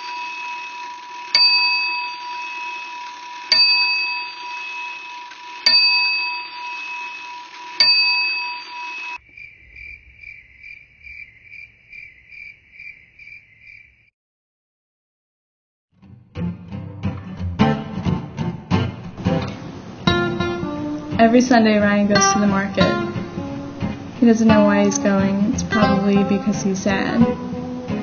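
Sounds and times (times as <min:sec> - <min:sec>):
bell-like chime: 0:00.0 - 0:09.2
low steady hum: 0:19.4 - 0:28.0.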